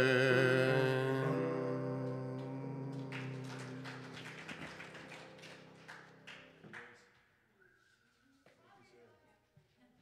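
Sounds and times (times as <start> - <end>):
scattered hand clapping: 2.4 - 7.3.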